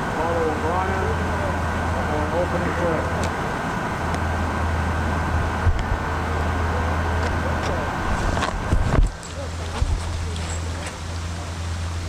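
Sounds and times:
fountain water splashing: 0.0 - 12.0
low steady hum: 0.0 - 12.0
faint voices: 5.5 - 12.0.

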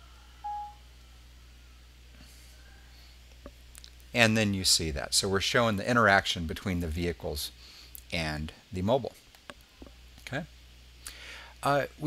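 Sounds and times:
short electronic beep: 0.4 - 0.8.

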